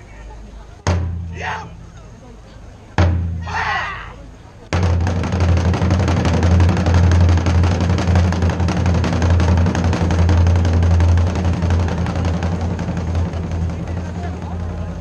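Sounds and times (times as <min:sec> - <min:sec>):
ensemble of drums playing: 0:00.8 - 0:02.0, 0:02.9 - 0:15.0.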